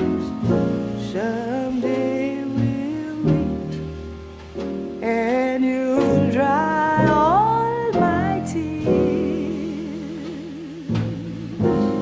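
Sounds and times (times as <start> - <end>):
band accompaniment: 0.0 - 12.0
woman singing jazz ballad: 0.0 - 12.0.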